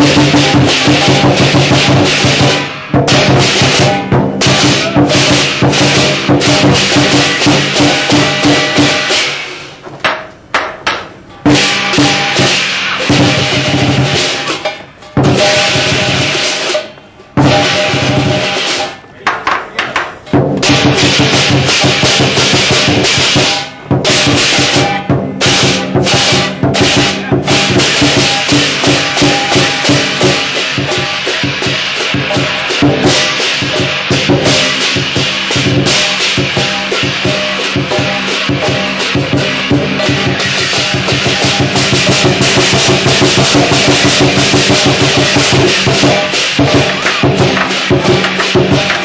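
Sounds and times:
cymbals crashing: 0.0 - 49.0
steady drum beats: 0.0 - 49.0.

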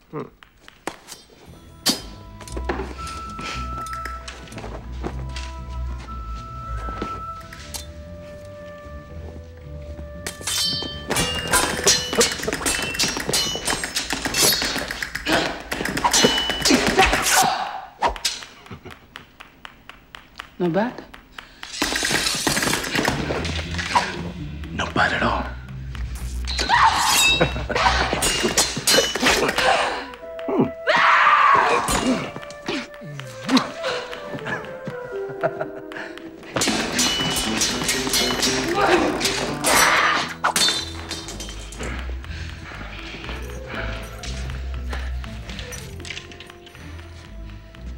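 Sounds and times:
sword blades clashing: 10.3 - 18.5, 26.5 - 30.0, 36.6 - 41.9.

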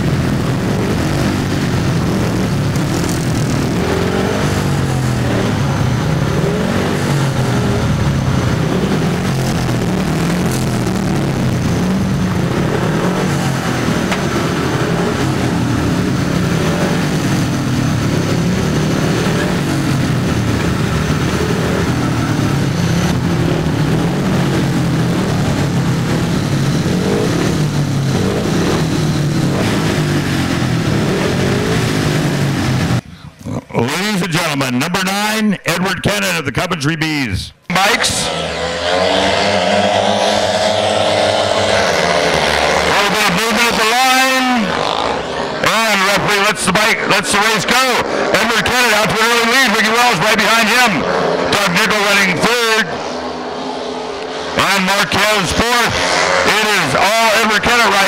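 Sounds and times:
motorcycle engines revving: 0.0 - 35.4, 37.7 - 58.0.

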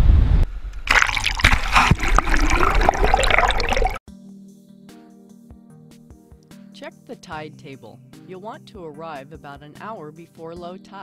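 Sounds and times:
wind rumble on microphone: 0.0 - 0.8
water splashing and gurgling: 0.8 - 4.0.

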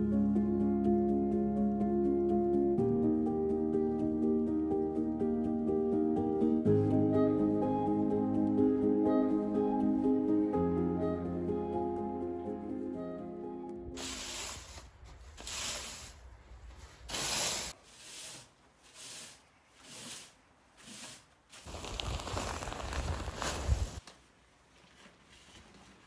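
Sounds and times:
rake scraping through sand: 14.0 - 24.0.

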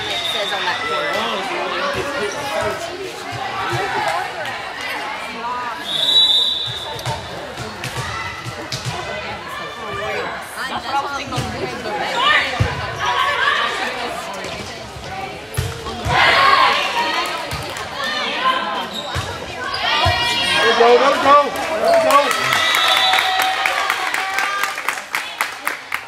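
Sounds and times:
people shouting and cheering: 0.0 - 14.2, 15.8 - 18.9, 19.5 - 25.4.

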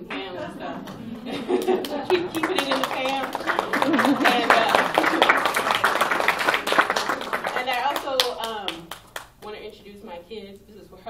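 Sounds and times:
woman speaking: 0.0 - 1.0, 1.8 - 5.0, 7.4 - 11.0
audience applause: 0.8 - 9.3.

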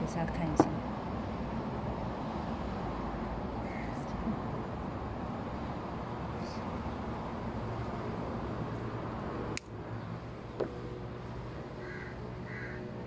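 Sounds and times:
distant traffic: 0.0 - 13.0.

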